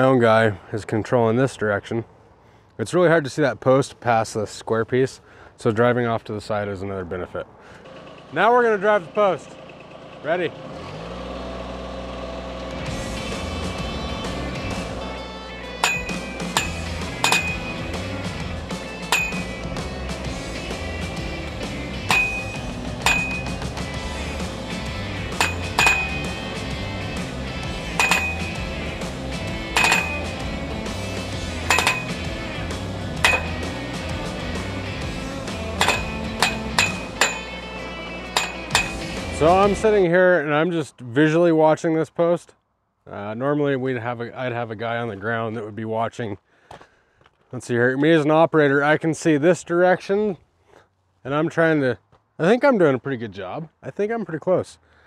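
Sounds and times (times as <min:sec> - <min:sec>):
loader engine running: 0:07.6 - 0:40.1
post driver striking metal post: 0:15.8 - 0:18.1, 0:18.9 - 0:19.7, 0:22.0 - 0:24.5, 0:25.2 - 0:26.7, 0:27.8 - 0:30.5, 0:31.5 - 0:34.6, 0:35.4 - 0:39.6.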